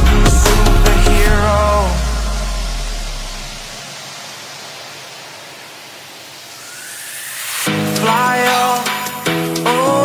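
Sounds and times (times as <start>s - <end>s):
bass: 0.0s - 3.7s
white-noise sweep hiss: 0.0s - 10.0s
faint rising tone: 1.6s - 9.3s.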